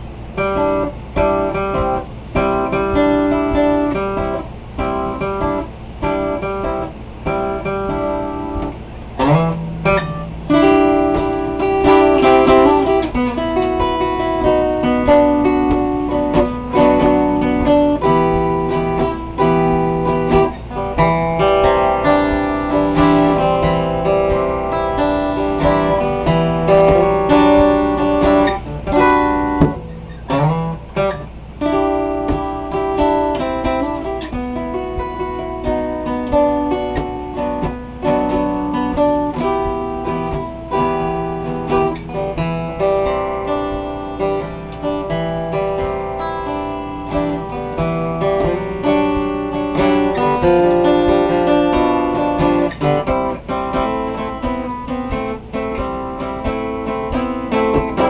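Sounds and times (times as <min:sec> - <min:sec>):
acoustic guitar picking: 0:00.0 - 0:58.0.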